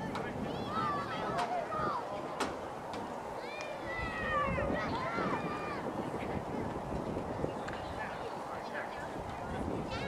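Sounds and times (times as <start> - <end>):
children calling and squealing: 0.0 - 2.5, 3.1 - 6.6, 9.4 - 10.0.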